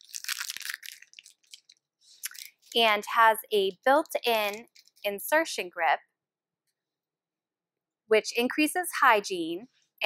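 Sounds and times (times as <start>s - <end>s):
plastic packaging crinkling: 0.0s - 2.9s, 4.0s - 5.1s.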